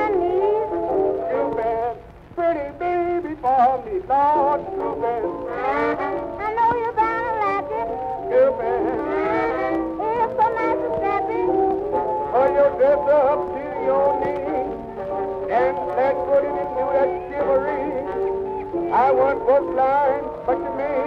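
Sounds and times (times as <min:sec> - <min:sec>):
old jazz band record: 0:00.0 - 0:21.0.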